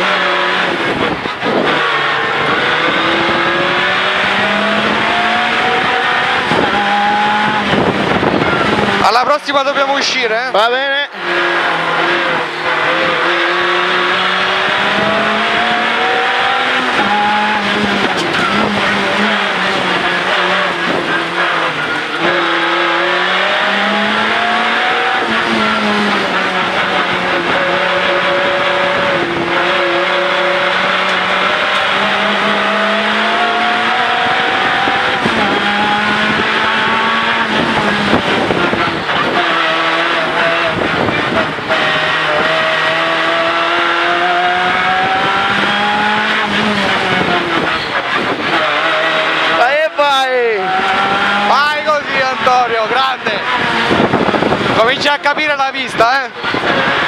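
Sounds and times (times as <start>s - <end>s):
rally car engine revving: 0.0s - 57.0s.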